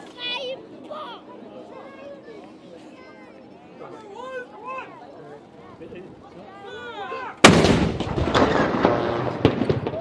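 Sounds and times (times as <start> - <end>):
artillery gun boom with echo: 7.4 - 10.0.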